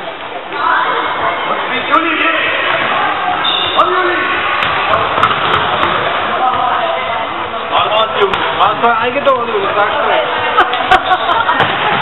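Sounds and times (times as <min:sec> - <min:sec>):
crowd noise echoing indoors: 0:00.0 - 0:12.0
ball thudding on hall floor: 0:04.6 - 0:06.7.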